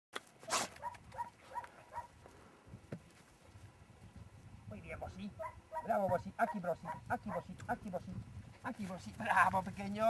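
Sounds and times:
dog yelping: 0.5s - 2.1s, 5.4s - 7.4s.

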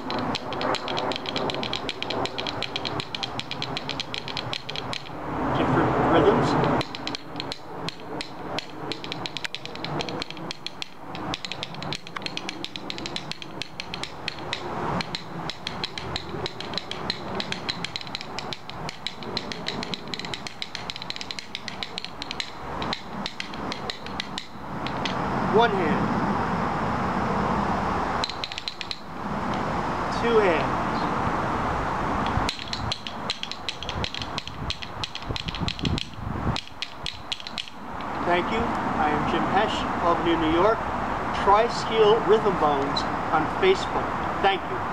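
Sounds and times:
rhythm bones clacking: 0.0s - 5.2s, 6.5s - 25.2s, 28.2s - 29.6s, 32.2s - 38.7s.

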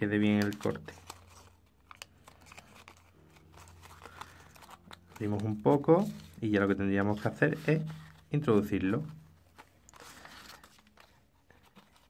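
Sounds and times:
paper rustling and crinkling: 0.1s - 12.0s.

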